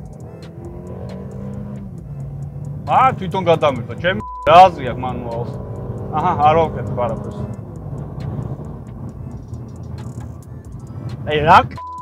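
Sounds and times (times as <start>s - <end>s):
car engine drone: 0.0s - 12.0s
tyre and road noise: 0.0s - 12.0s.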